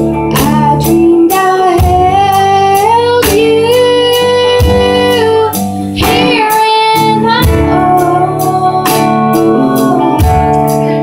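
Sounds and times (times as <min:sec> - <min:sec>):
electric guitar: 0:00.0 - 0:11.0
woman singing with vibrato: 0:00.0 - 0:11.0
drums hitting: 0:01.6 - 0:10.9.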